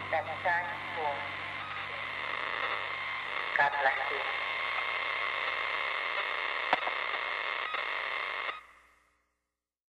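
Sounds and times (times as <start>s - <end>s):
static hiss: 0.0s - 9.2s.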